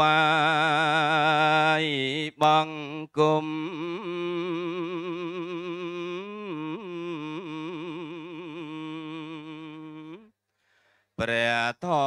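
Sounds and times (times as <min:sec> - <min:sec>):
man chanting: 0:00.0 - 0:10.3, 0:11.2 - 0:12.0.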